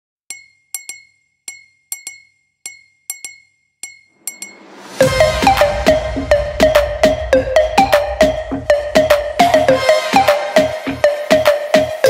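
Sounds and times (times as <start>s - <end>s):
clinking percussion hits: 0.3s - 9.7s.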